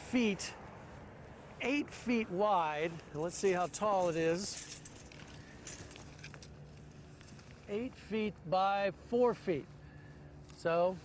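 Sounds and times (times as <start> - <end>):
low steady hum: 0.0 - 11.0
tape measure clicks and rustles: 2.8 - 8.1.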